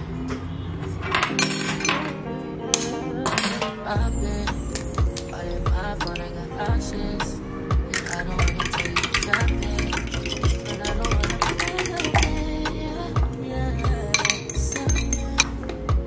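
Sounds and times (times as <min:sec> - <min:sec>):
background music with deep beat: 0:04.0 - 0:16.0
whisk clinking in ceramic bowl: 0:08.5 - 0:12.1.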